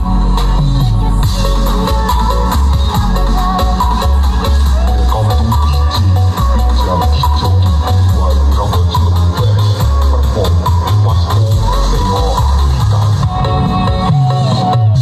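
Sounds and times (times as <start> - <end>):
heavy pulsing bass: 0.0 - 15.0
loud electronic dance music: 0.0 - 15.0.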